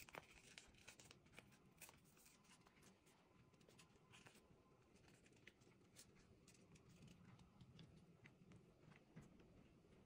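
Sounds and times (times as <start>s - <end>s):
tape being peeled and handled: 0.0s - 10.0s.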